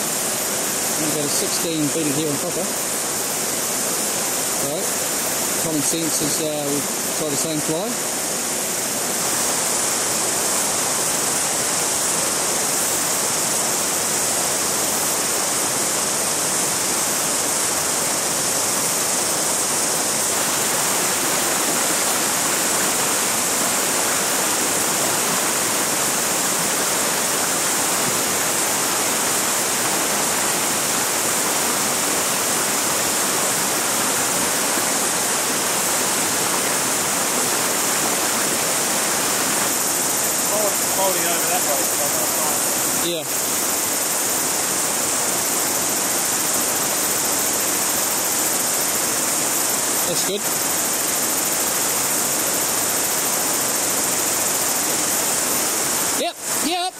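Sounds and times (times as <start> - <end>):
river water over rocks: 0.0 - 56.9.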